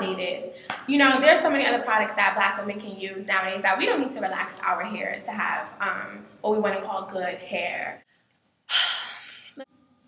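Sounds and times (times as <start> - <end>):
woman sighing: 8.7 - 9.6.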